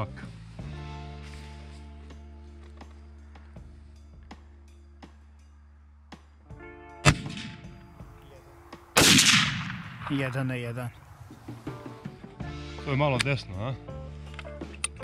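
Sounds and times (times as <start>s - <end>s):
background music: 0.0s - 15.0s
rifle shot with echo: 7.0s - 8.1s, 8.9s - 10.6s
loud bang: 9.0s - 10.2s.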